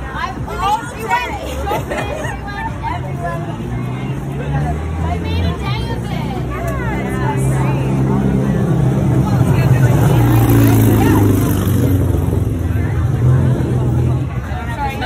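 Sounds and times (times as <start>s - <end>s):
people talking: 0.0s - 15.0s
vehicle engine humming: 0.0s - 15.0s.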